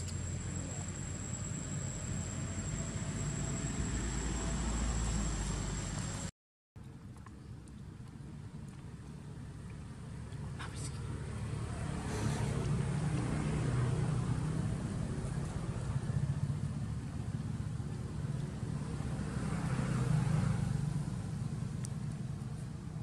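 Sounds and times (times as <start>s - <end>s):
passing vehicle engine rumble: 0.0s - 6.3s, 8.8s - 23.0s.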